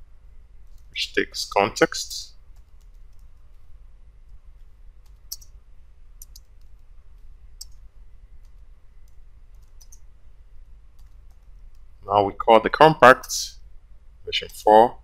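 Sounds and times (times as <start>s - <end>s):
low steady hum: 0.0s - 15.0s
keyboard keys clicking: 6.2s - 7.8s, 8.4s - 10.0s.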